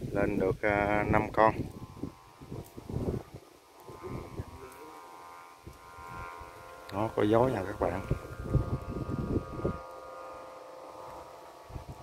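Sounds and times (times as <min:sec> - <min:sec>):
wind rumble on microphone: 0:00.0 - 0:04.8, 0:05.5 - 0:12.0
kite flutes humming drone: 0:00.7 - 0:12.0.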